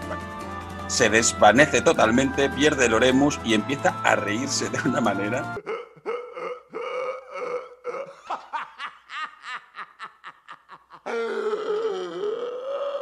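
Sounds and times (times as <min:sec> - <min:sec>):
man laughing hysterically: 0:05.6 - 0:12.0.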